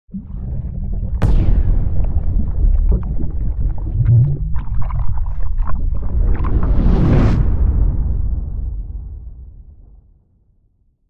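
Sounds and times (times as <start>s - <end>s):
bubbly clicks and patters: 0.1s - 7.2s
deep steady rumble: 0.1s - 10.0s.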